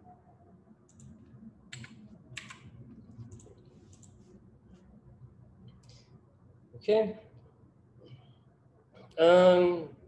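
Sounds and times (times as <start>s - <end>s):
computer keyboard typing: 0.9s - 4.2s.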